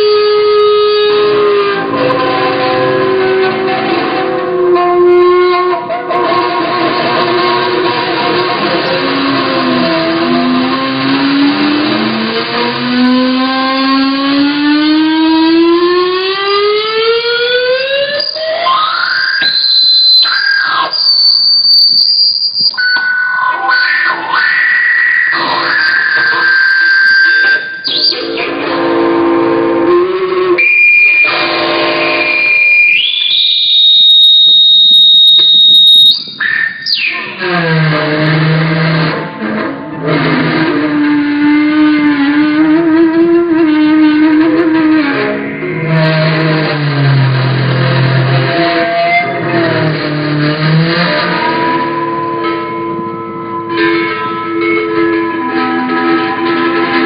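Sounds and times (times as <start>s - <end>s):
slide electric guitar feedback: 0.0s - 57.0s.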